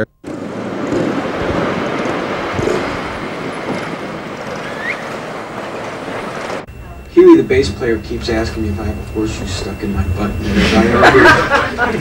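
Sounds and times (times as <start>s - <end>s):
wind and road noise: 0.0s - 7.2s
wind rushing over microphone: 0.2s - 6.7s.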